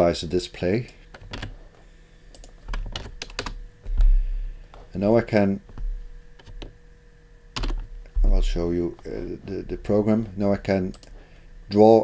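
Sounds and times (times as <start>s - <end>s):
computer keyboard typing: 1.2s - 1.5s, 2.4s - 3.6s, 7.6s - 7.9s, 10.9s - 11.2s
heavy thud: 3.9s - 4.5s, 8.2s - 8.6s.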